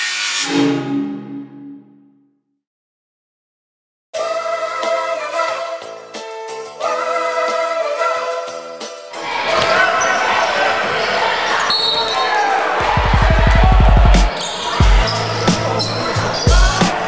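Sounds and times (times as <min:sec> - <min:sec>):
gym crowd voices: 0:09.2 - 0:17.0.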